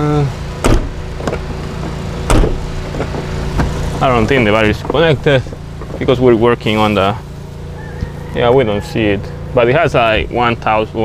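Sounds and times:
steady low rumble: 0.0 - 8.1
truck door clunk: 0.6 - 6.1.

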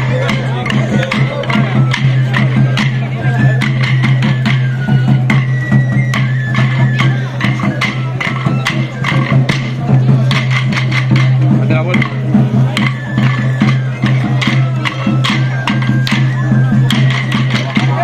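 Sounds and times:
wooden sticks clacking: 0.0 - 4.7, 6.1 - 18.0
crowd voices: 0.0 - 18.0.

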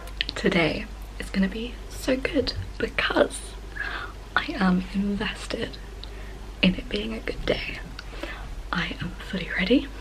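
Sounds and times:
woman talking: 0.0 - 5.9, 6.6 - 10.0.

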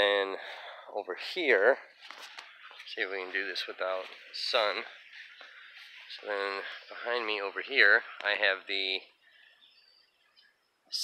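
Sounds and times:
distant bird chirps: 0.0 - 11.0
faint outdoor ambience: 0.0 - 11.0.

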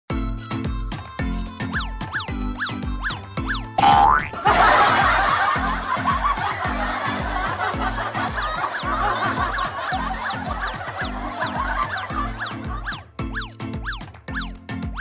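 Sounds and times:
music with thumping beat: 0.1 - 15.0
people laughing: 4.3 - 13.1.

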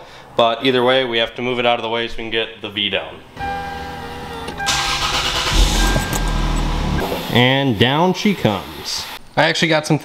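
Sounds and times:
car engine starting and running: 3.4 - 7.7.

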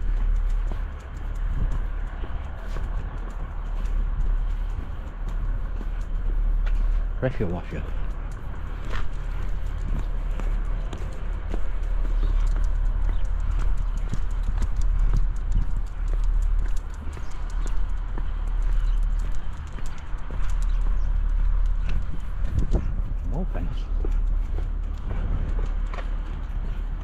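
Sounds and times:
footsteps on tarmac: 0.0 - 27.0
low rumble: 0.0 - 27.0.

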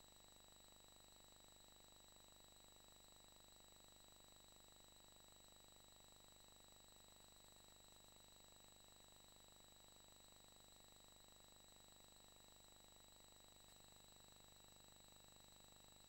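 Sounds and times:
faint electrical hum: 0.0 - 16.0.

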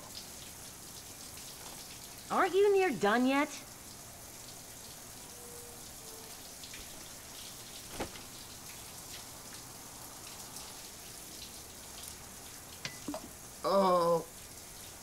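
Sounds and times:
shower spraying water: 0.0 - 13.6.

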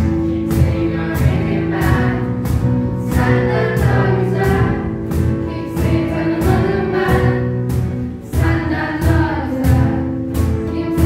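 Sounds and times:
cajon beat: 0.0 - 11.0
group singing: 0.0 - 11.0.

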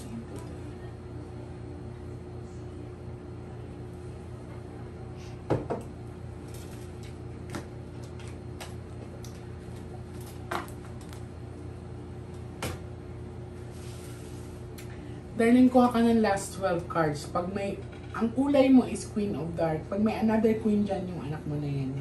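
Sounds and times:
steady low hum: 0.0 - 22.0
mug and cards knocking on table: 5.5 - 5.9.

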